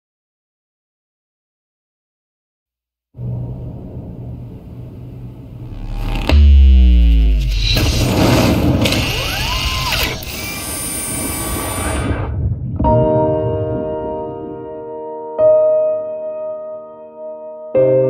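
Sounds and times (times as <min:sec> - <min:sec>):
deep boom with downward sweep: 0:03.2 - 0:08.8
low rumble: 0:03.2 - 0:09.3
noisy wash with gliding tones: 0:03.9 - 0:09.5.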